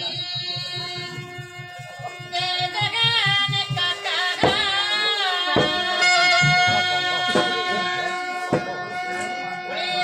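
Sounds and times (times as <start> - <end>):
fast drum beat: 0.0 - 8.0
harmonium and clarinet melody: 0.0 - 10.0.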